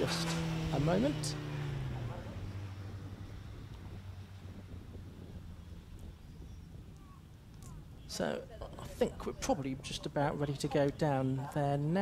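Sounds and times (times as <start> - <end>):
wind noise: 1.4 - 11.2.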